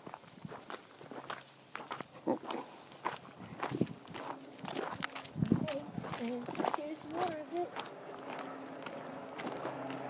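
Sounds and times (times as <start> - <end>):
footsteps crunching on gravel: 0.0 - 10.0.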